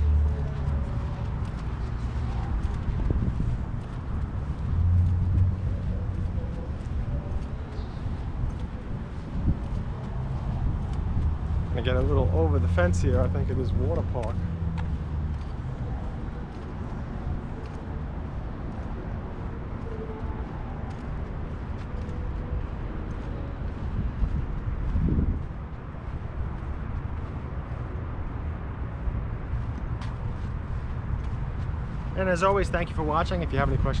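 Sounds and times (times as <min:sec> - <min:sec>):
road traffic rumble: 0:00.0 - 0:34.0.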